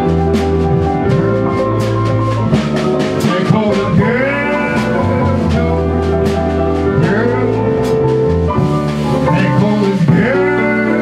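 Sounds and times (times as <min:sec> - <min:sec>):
baritone saxophone melody: 0:00.0 - 0:11.0
drums: 0:00.0 - 0:11.0
plucked upright bass: 0:00.0 - 0:11.0.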